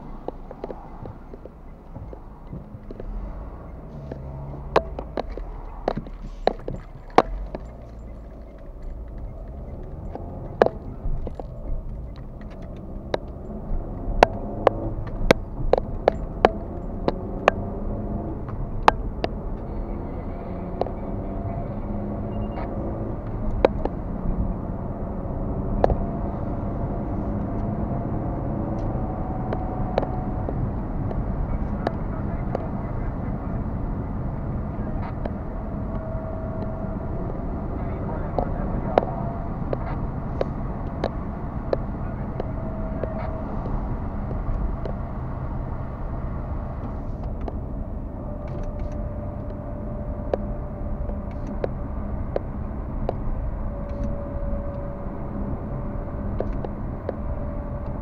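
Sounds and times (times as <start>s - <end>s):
car engine and tyre noise: 0.0s - 58.0s.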